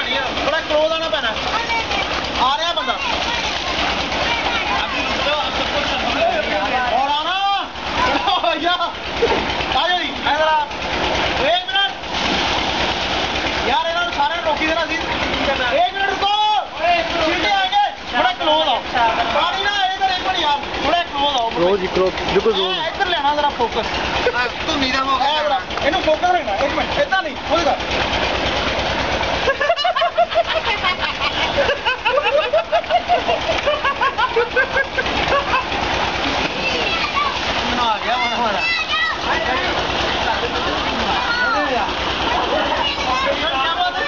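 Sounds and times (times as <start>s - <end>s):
water pouring from pipe: 0.0s - 29.5s, 32.5s - 44.0s.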